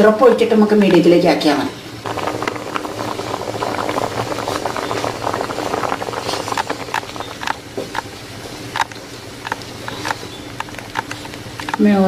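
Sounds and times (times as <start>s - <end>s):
dumplings boiling in a pot: 0.0s - 12.0s.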